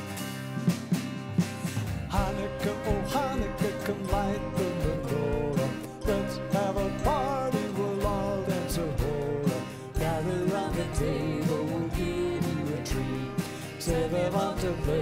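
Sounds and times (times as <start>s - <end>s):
small band playing: 0.0s - 15.0s
strummed acoustic guitar: 0.0s - 15.0s
man singing: 2.1s - 15.0s.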